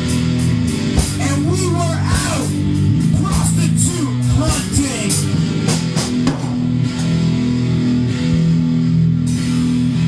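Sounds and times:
drum and cymbal hits: 0.0s - 7.3s
electric guitar chords: 0.0s - 10.0s.

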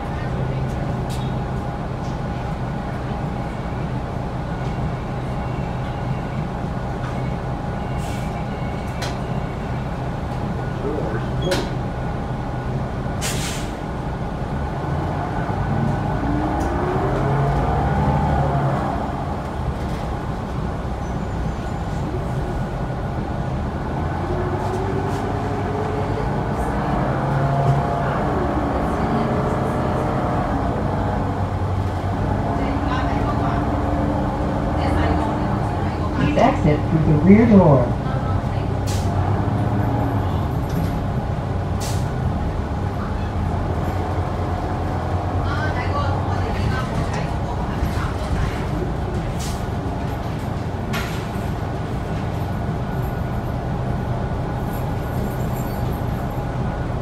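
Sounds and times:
bus engine drone: 0.0s - 57.0s
air brake hiss: 13.2s - 13.8s.

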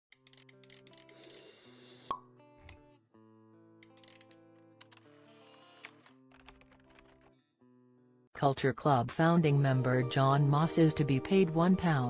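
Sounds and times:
light background music: 0.1s - 7.3s, 8.4s - 12.0s.

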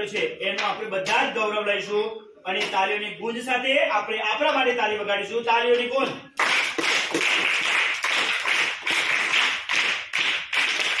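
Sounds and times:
group clapping in unison: 6.4s - 11.0s.

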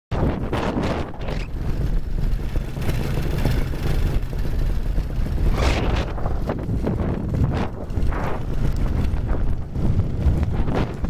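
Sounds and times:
wind rushing over microphone: 0.1s - 11.0s
paramotor engine drone: 0.2s - 11.0s.

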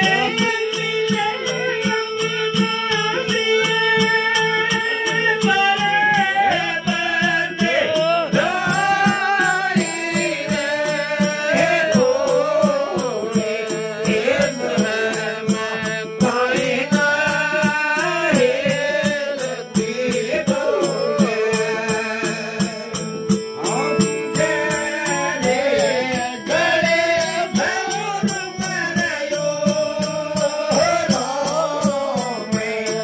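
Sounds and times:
hand-played barrel drum: 0.0s - 33.0s
harmonium chords: 0.0s - 33.0s
jingling percussion: 0.0s - 33.0s
man singing: 0.0s - 33.0s.

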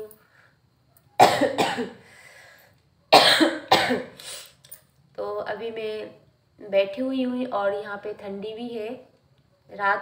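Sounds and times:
woman coughing: 1.2s - 2.0s, 3.1s - 4.2s.

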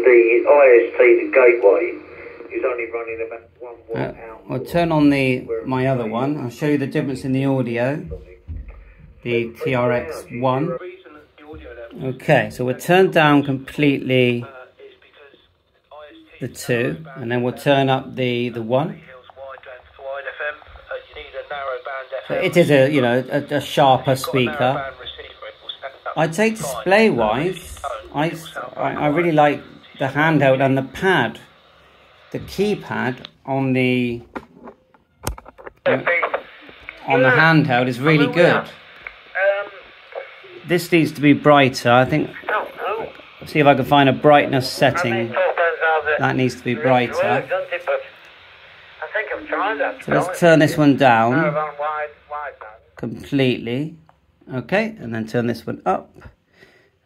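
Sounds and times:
voice over scanner speaker: 0.0s - 15.4s, 16.0s - 31.6s, 35.9s - 48.2s, 49.0s - 53.7s
faint hiss: 0.0s - 34.4s, 35.8s - 57.0s.

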